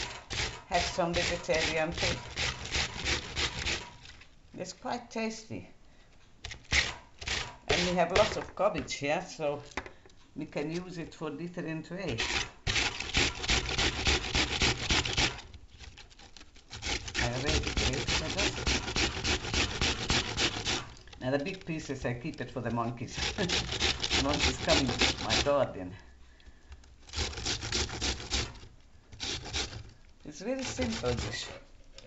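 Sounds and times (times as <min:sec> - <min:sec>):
cabbage grated on metal grater: 0:00.0 - 0:04.2, 0:06.4 - 0:09.0, 0:12.1 - 0:25.8, 0:27.0 - 0:32.0.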